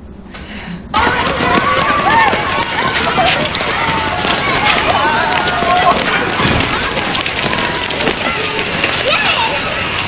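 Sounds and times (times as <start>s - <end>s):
children shouting: 0.9s - 10.0s
running footsteps on wet pavement: 0.9s - 10.0s.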